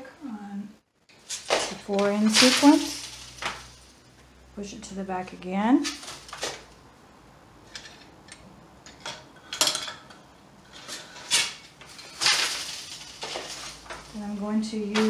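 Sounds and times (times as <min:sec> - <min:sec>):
sliding rustle: 0:01.1 - 0:04.1, 0:05.8 - 0:06.8, 0:10.6 - 0:15.0.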